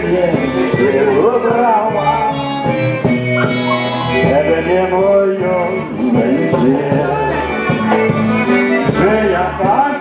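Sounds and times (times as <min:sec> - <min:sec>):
live band playing dance music: 0:00.0 - 0:10.0.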